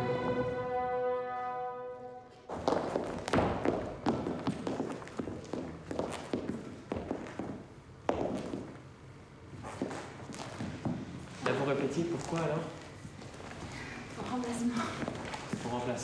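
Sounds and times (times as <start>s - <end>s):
pointe shoes knocking on floor: 2.5s - 8.8s, 9.6s - 11.6s.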